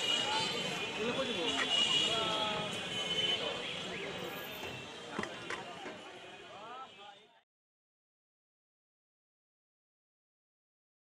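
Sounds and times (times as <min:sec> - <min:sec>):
people talking: 0:00.0 - 0:07.4
steady traffic noise: 0:00.0 - 0:07.4.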